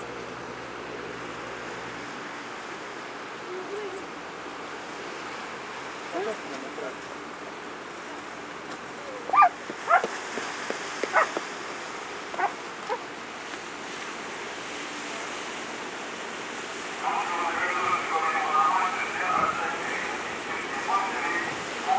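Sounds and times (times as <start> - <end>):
surf washing: 0.0 - 21.9
dog barking: 9.3 - 10.1, 11.1 - 11.3, 12.4 - 13.0.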